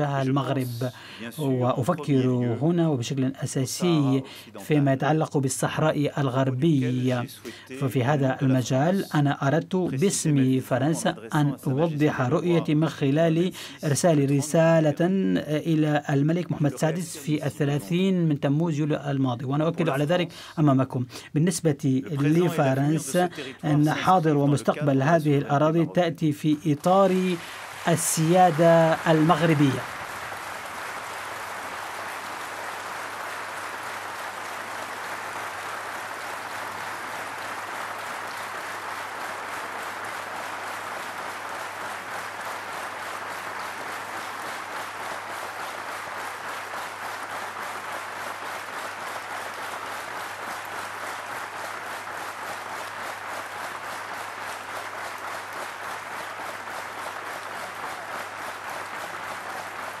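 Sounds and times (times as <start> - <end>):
crowd applauding: 0.0 - 18.0, 22.1 - 60.0.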